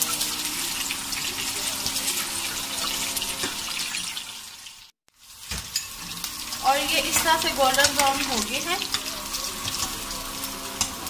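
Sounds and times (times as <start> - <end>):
hot oil sizzling: 0.0 - 11.0.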